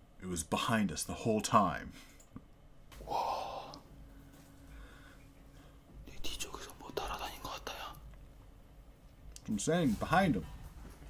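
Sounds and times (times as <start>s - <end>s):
man whispering: 6.0s - 8.1s.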